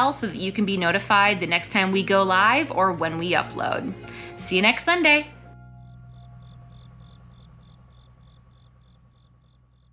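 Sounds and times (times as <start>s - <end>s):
steady low hum: 4.9s - 9.9s
crickets chirping: 5.4s - 9.9s.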